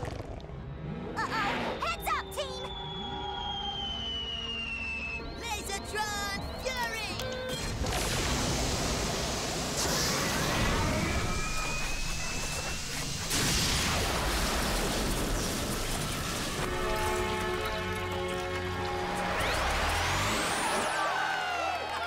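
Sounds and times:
crackling electric energy beam: 7.6s - 17.1s
dramatic music score: 11.2s - 21.1s.

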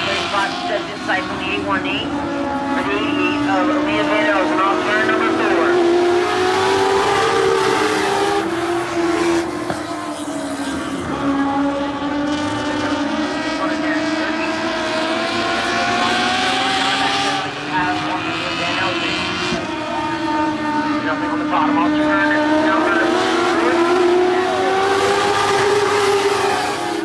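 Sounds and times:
race car engines: 0.0s - 27.0s.

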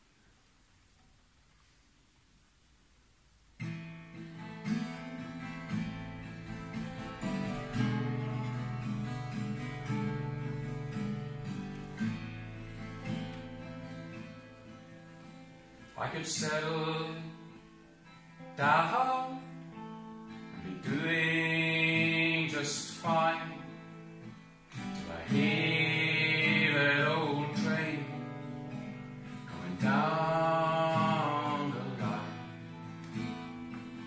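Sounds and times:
acoustic guitar and dobro: 3.6s - 34.0s.

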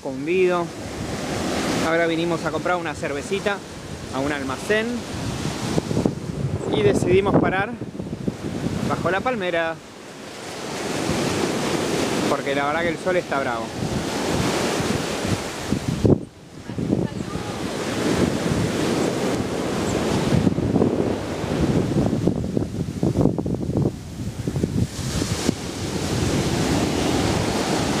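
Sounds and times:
sea waves breaking on beach: 0.0s - 28.0s
wind buffeting microphone: 0.6s - 28.0s.

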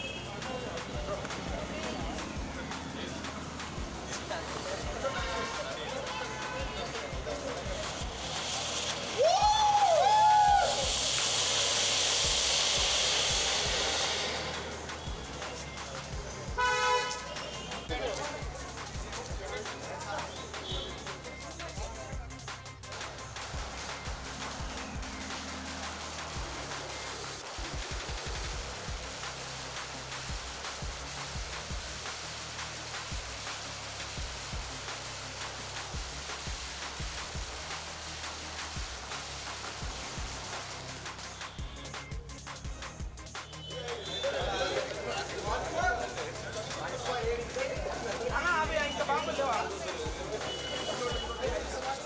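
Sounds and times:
background music with bass: 0.0s - 52.0s
firework spraying sparks hissing: 0.0s - 52.0s
rising and falling firework whistles: 7.9s - 15.9s.

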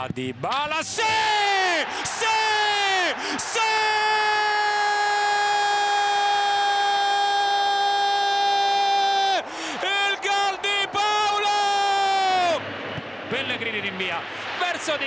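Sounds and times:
man shouting goal commentary: 0.0s - 12.6s.

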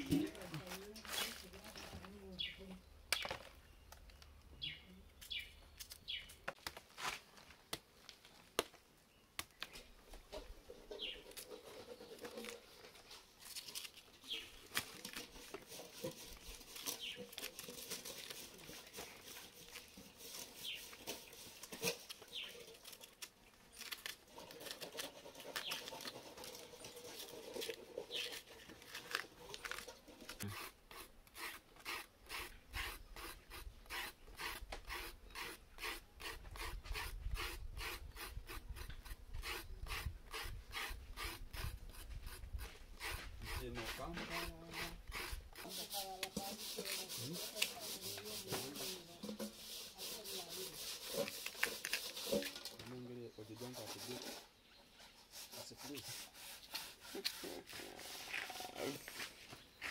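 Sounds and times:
knife scraping peel off roots: 11.2s - 52.9s.

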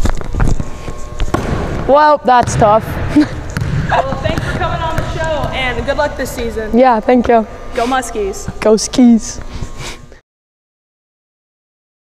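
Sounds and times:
gym room noise: 0.0s - 10.2s.

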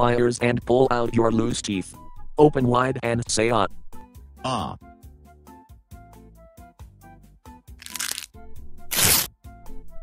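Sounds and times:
soft background music: 0.0s - 10.0s
cartoon cracking sound effects: 7.8s - 8.3s, 8.9s - 9.3s.

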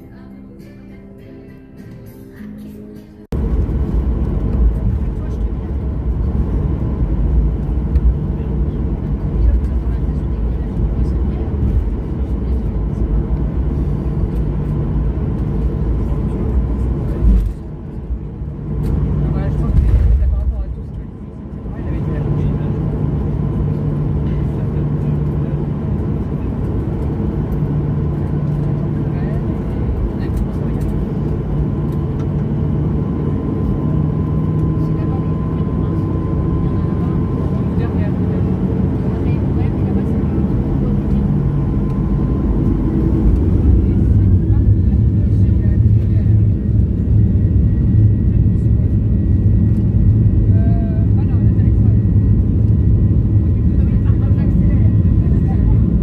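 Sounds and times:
jet engines inside cabin: 3.2s - 56.0s.

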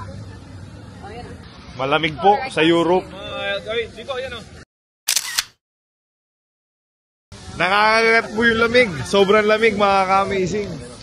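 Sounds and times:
camera shutter double click: 5.1s - 5.6s.

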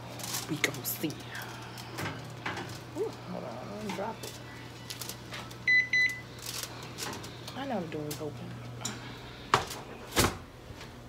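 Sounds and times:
oven control panel beeps: 5.6s - 6.3s.

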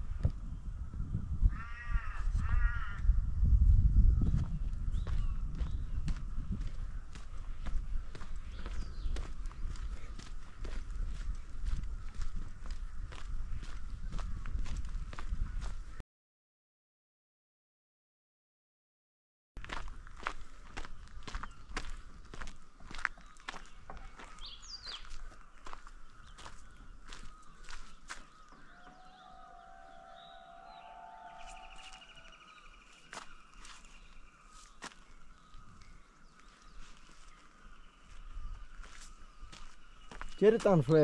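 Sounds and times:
bird calls: 4.2s - 14.4s, 20.2s - 41.0s
footsteps on gravel trail: 4.3s - 16.0s, 19.6s - 29.6s, 31.3s - 41.0s.

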